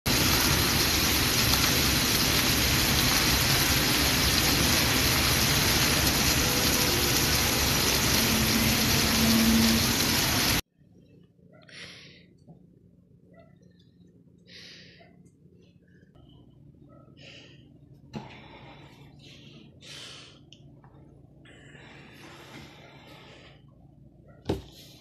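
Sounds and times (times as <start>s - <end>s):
fountain water jets splashing: 0.1s - 10.6s.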